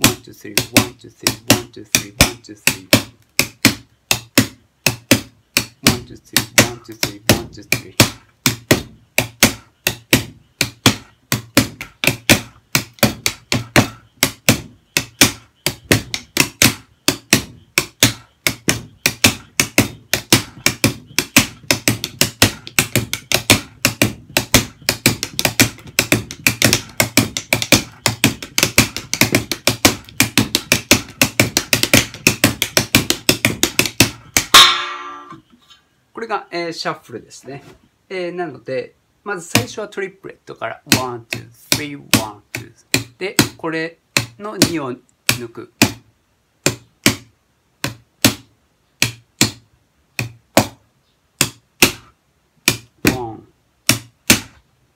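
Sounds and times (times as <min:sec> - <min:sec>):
drumsticks on practice pad: 0:00.0 - 0:35.8, 0:51.4 - 0:54.6.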